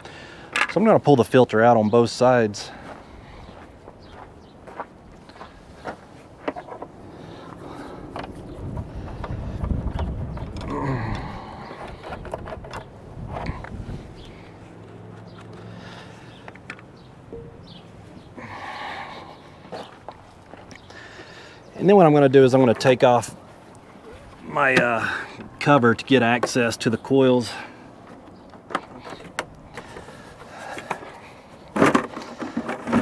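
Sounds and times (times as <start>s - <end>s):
footsteps on gravel: 2.6s - 6.7s, 17.7s - 25.6s.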